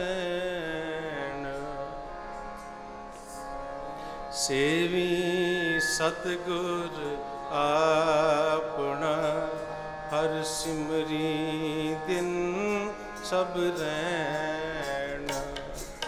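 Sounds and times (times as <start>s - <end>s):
harmonium accompaniment: 0.0s - 16.0s
person singing long held notes: 4.3s - 16.0s.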